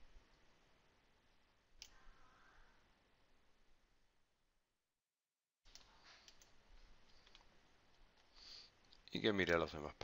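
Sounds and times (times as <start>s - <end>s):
low room noise: 0.0s - 5.0s, 5.6s - 10.0s.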